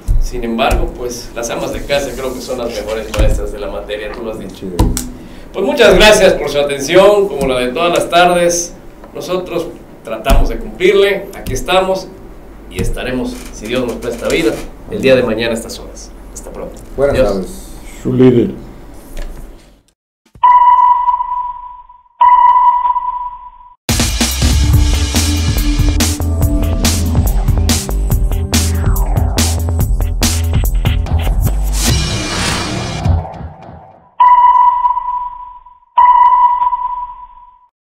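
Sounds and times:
sonar pings: 20.4s - 23.8s, 34.2s - 37.7s
music: 23.9s - 33.8s.

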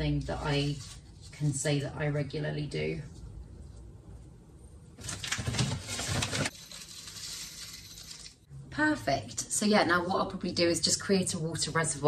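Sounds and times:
granules pouring into plastic pot: 6.0s - 8.4s.

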